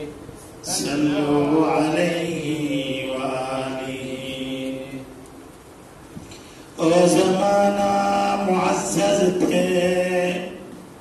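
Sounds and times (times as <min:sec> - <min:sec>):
man chanting into a microphone: 0:00.0 - 0:05.1, 0:06.8 - 0:10.8.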